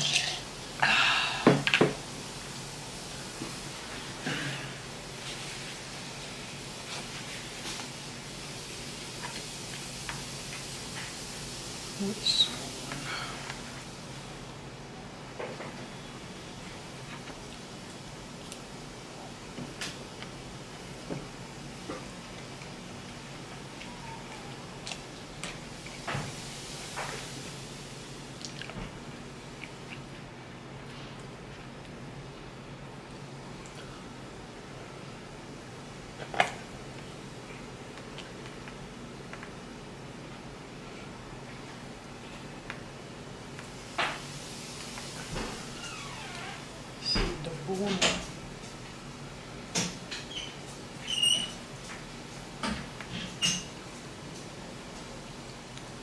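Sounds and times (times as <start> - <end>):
microphone hiss: 0.0 - 56.0
chewing food: 28.4 - 28.8.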